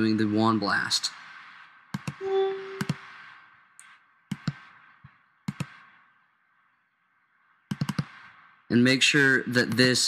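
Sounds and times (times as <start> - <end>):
faint hiss: 0.0 - 10.0
computer mouse clicks: 1.9 - 2.2, 2.8 - 3.2, 3.8 - 4.7, 5.5 - 5.8, 7.7 - 8.2.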